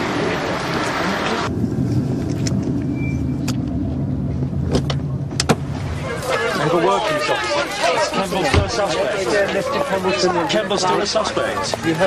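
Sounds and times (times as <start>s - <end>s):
voices: 5.5s - 12.0s.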